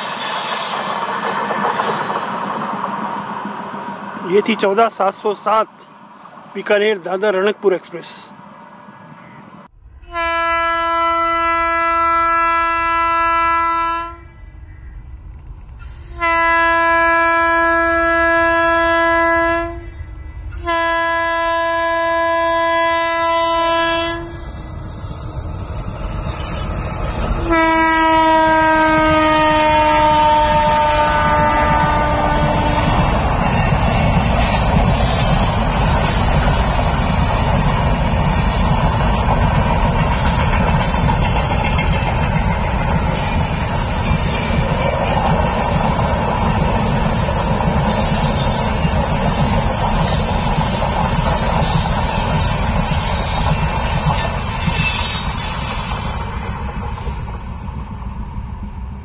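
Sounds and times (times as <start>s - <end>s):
train wheels clickety-clack: 0.0s - 4.8s, 25.5s - 58.9s
train coaches rumbling: 0.0s - 59.0s
train horn blasts: 10.0s - 14.3s, 16.1s - 19.9s, 20.6s - 24.6s, 27.1s - 34.1s.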